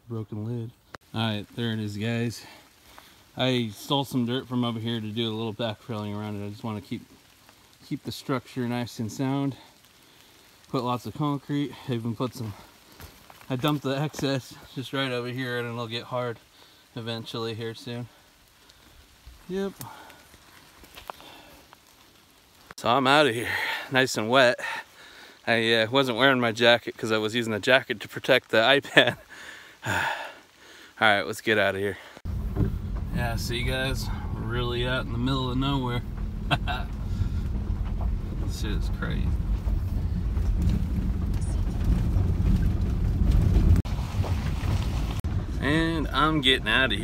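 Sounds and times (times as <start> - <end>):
footsteps on wet dirt and grass: 9.2 - 15.1, 18.1 - 22.9, 32.0 - 47.0
truck engine rumbling: 32.2 - 47.0.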